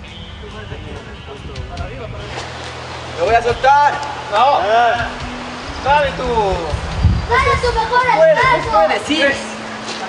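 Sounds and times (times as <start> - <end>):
faint talking of people: 0.0 - 10.0
noisy rush: 0.0 - 10.0.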